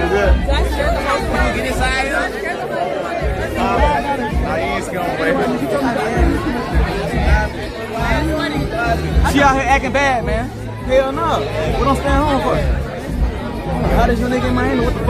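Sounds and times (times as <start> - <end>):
loud music with heavy bass: 0.0 - 2.4, 3.2 - 15.0
crowd chatter: 0.0 - 15.0.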